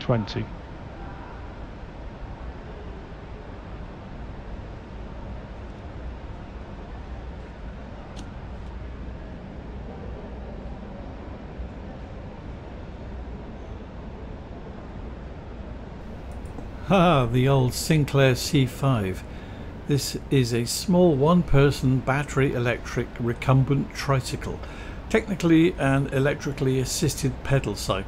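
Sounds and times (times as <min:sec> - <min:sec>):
constant low rumble: 0:15.6 - 0:28.0.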